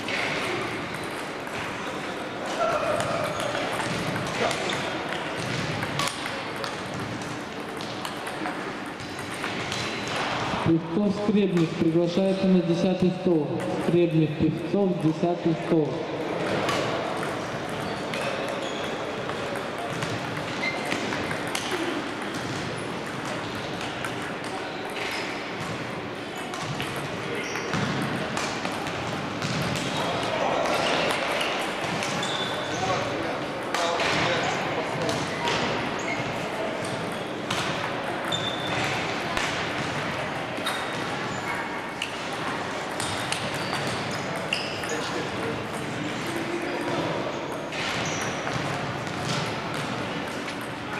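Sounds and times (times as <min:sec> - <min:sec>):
large hall background: 0:00.0 - 0:50.9
table tennis balls clicking: 0:03.0 - 0:10.3, 0:16.4 - 0:29.9, 0:42.0 - 0:47.8.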